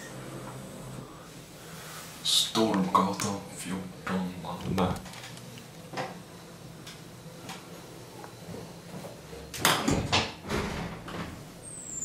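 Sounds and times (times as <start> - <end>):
short high squeak: 11.6 - 12.0.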